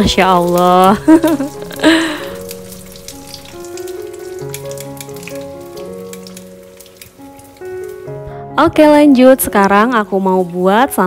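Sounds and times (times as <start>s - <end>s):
background music of held notes: 0.0s - 11.0s
food sizzling in oil: 0.0s - 11.0s.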